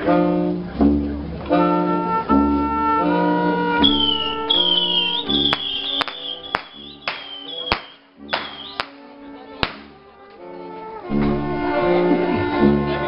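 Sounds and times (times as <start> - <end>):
trumpet melody: 1.5 - 13.0
sousaphone bass notes: 3.6 - 7.1
sharp cracks or clicks: 5.5 - 9.0, 9.6 - 9.9.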